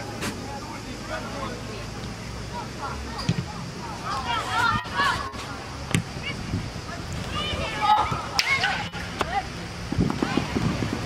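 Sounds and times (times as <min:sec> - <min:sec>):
low outdoor rumble: 0:00.0 - 0:11.0
distant shouts of players: 0:02.3 - 0:09.6.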